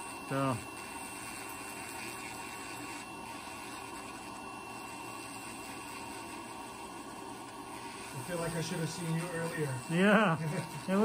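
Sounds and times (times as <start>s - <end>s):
rotary nail drill grinding: 0.0s - 11.0s.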